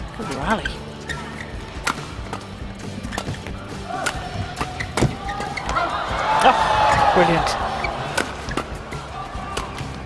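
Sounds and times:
rackets striking shuttlecock: 0:01.8 - 0:05.8, 0:08.0 - 0:10.0.

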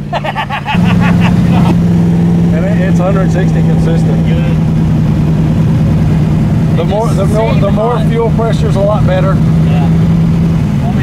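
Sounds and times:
engine drone from inside cab: 0:00.0 - 0:11.0
road rumble: 0:00.0 - 0:11.0.

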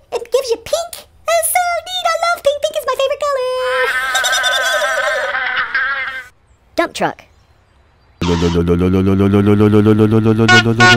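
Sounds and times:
low throbbing engine drone: 0:08.2 - 0:10.9.

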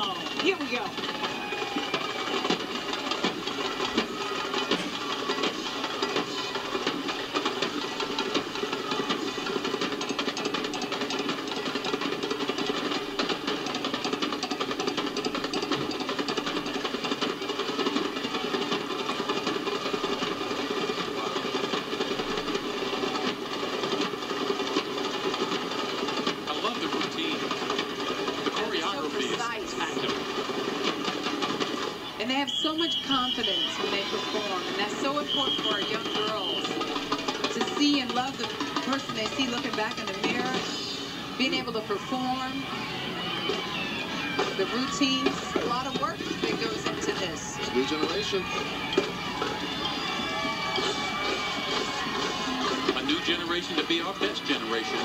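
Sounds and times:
crowd voices: 0:00.0 - 0:55.0
marching drums: 0:00.0 - 0:55.0.

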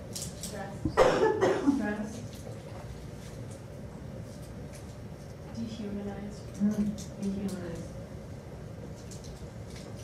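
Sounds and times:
cough-like vocal sound: 0:01.0 - 0:01.7.

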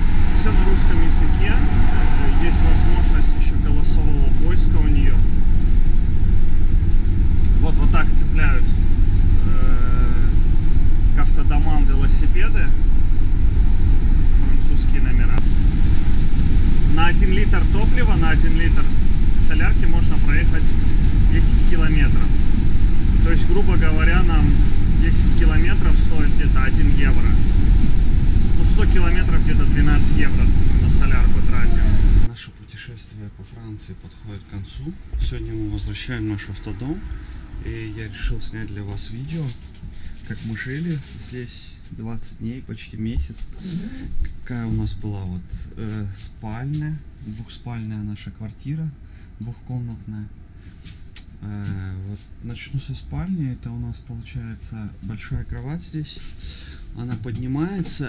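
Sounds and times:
road and engine rumble in vehicle: 0:00.0 - 0:58.0.

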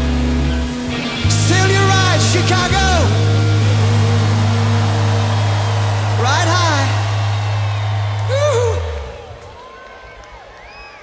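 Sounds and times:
rock band sustaining low chord: 0:00.0 - 0:09.6.

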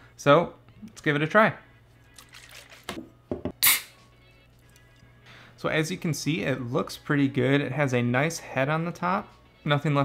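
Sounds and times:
can popping and hissing: 0:03.6 - 0:04.0.

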